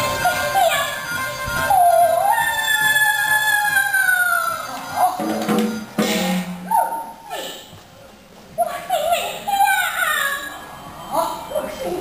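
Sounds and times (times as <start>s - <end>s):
steady musical accompaniment: 4.6s - 6.7s.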